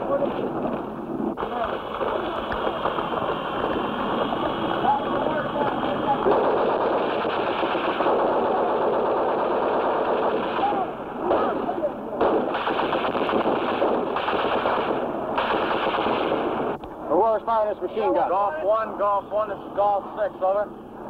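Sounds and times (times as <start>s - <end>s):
machine-gun fire: 1.4s - 16.8s
voices shouting: 10.4s - 12.2s.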